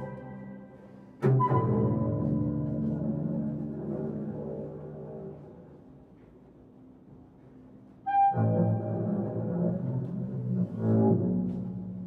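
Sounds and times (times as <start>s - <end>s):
clarinet: 0.0s - 3.7s, 8.0s - 12.0s
bowed double bass: 0.0s - 5.9s, 8.0s - 12.0s.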